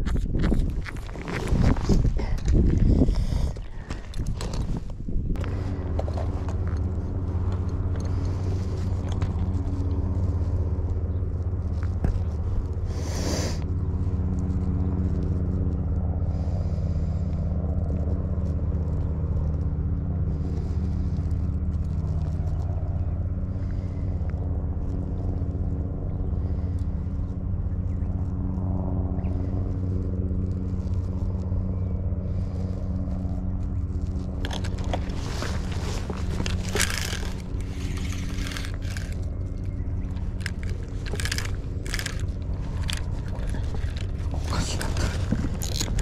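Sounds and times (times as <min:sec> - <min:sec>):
scraping and rustling handling: 0:00.0 - 0:10.6, 0:33.1 - 0:46.0
engine droning: 0:00.0 - 0:46.0.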